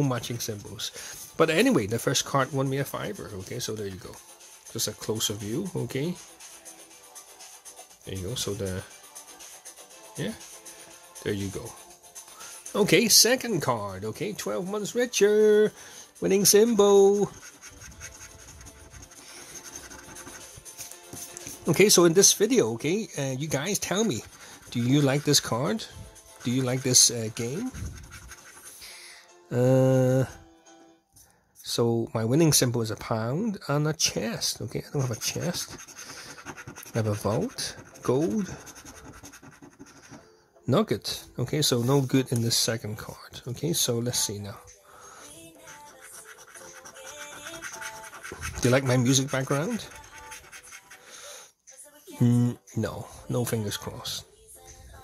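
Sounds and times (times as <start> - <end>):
background music with held notes: 0.0 - 55.0
coin scraping scratchcard: 16.2 - 21.7, 23.7 - 28.8, 35.0 - 40.2, 45.6 - 51.0.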